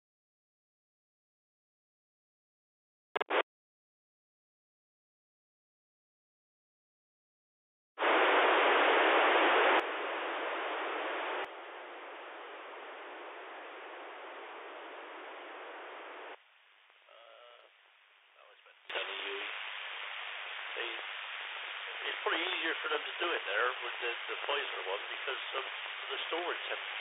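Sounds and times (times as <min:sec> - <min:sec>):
radio receiver hiss: 0:03.2 - 0:03.4, 0:08.0 - 0:17.8, 0:18.4 - 0:27.0
voice through radio noise: 0:17.1 - 0:17.7, 0:18.4 - 0:19.5, 0:20.8 - 0:21.0, 0:21.9 - 0:27.0.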